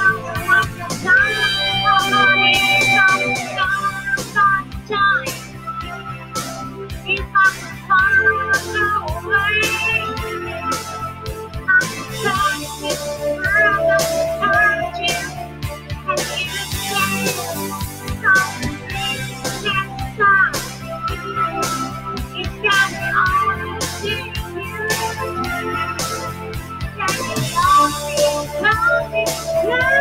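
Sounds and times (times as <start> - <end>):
woman singing: 0.0 - 6.2, 7.0 - 15.4, 16.0 - 26.3, 26.9 - 30.0.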